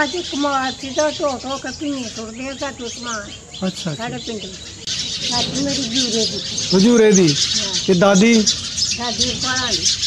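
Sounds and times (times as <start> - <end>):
woman speaking: 0.0 - 3.3, 4.0 - 4.6, 5.3 - 6.5, 7.5 - 7.9, 9.0 - 9.9
small birds chirping: 0.0 - 10.0.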